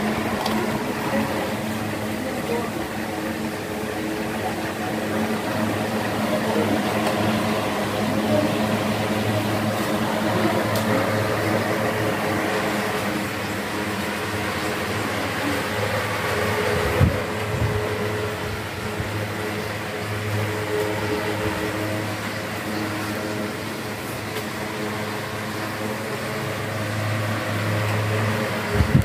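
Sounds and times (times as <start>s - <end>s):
electric fans whirring: 0.0s - 29.0s.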